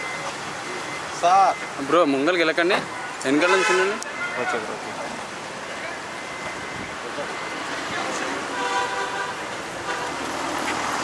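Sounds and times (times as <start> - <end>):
road traffic hiss: 0.0 - 11.0
car horn: 2.9 - 4.7, 8.5 - 10.3.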